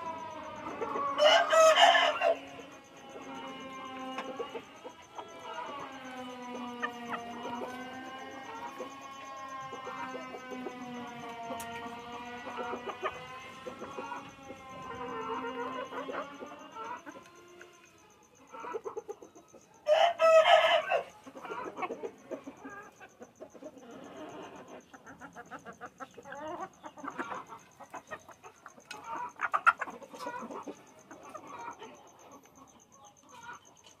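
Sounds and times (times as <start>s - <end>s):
hens clucking: 0.0s - 34.0s.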